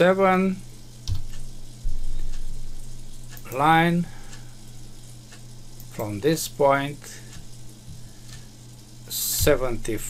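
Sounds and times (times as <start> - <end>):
faint hiss: 0.0 - 10.0
low electrical hum: 0.0 - 10.0.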